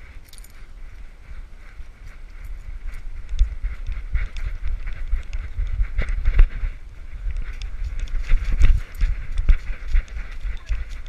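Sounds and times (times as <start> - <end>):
light clicks and rustles: 0.0 - 1.1, 2.0 - 11.0
wind buffeting on microphone: 0.0 - 11.0.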